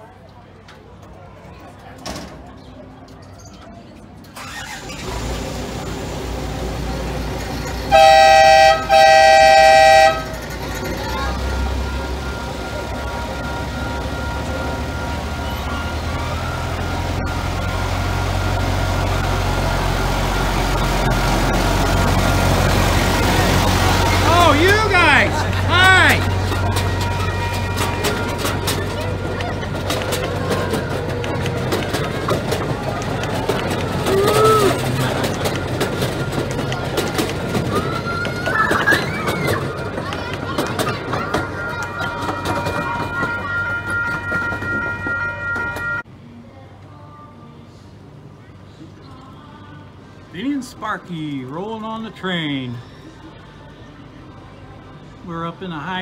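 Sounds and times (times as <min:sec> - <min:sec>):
locomotive engine rumbling: 0:00.0 - 0:46.2
people's voices: 0:00.0 - 0:56.0
locomotive horn blasts: 0:07.9 - 0:10.4, 0:23.8 - 0:29.2, 0:41.5 - 0:46.0.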